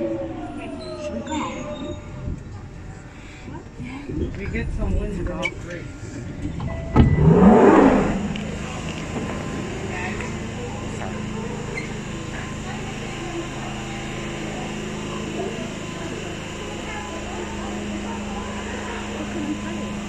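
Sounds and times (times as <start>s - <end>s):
passenger noise: 0.0s - 20.0s
train whine and hum: 0.0s - 20.0s.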